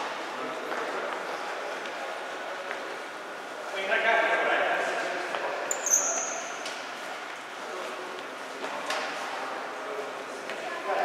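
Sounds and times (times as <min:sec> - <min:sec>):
sports shoe squeak on wooden floor: 0:05.7 - 0:06.6.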